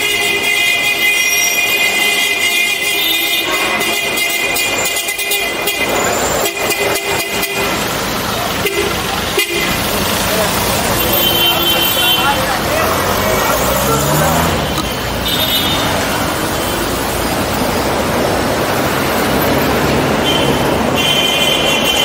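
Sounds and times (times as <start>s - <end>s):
car horns honking: 0.0s - 17.4s, 19.6s - 22.0s
car engines running: 0.0s - 22.0s.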